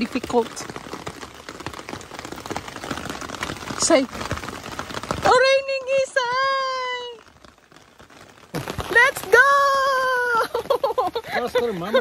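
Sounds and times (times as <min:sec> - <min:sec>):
rain pattering on umbrella: 0:00.0 - 0:12.0.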